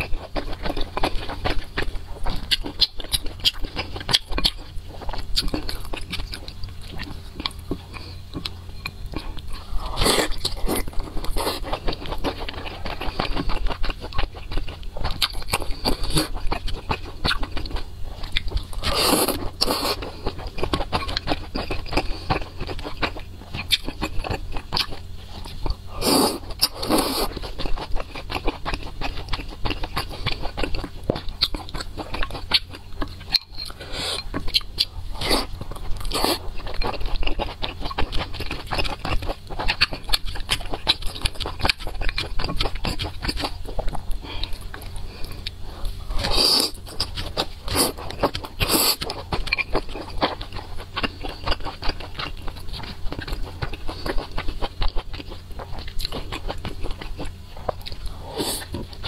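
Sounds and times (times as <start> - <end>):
close chewing and biting: 0.0 - 59.0.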